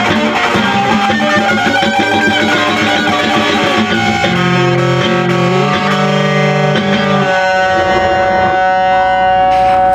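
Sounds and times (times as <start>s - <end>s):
guitar sustained chord: 0.0s - 9.9s.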